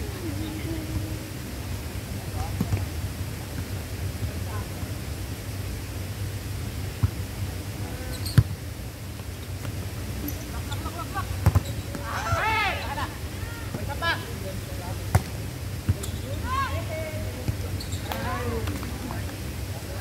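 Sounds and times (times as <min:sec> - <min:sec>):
traffic rumble: 0:00.0 - 0:20.0
wind: 0:00.0 - 0:20.0.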